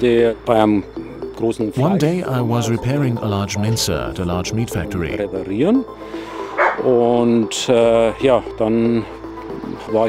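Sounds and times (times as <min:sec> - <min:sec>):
background music: 0:00.0 - 0:10.0
man's voice: 0:01.5 - 0:05.9.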